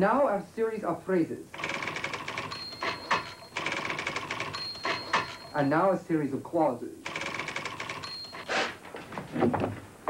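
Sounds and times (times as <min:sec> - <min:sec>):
typewriter high whine: 0:01.5 - 0:05.6, 0:07.1 - 0:08.8
electric typewriter keystrokes: 0:01.6 - 0:05.5, 0:07.1 - 0:08.4
typewriter heavy clacks: 0:01.6 - 0:05.6, 0:07.1 - 0:08.4.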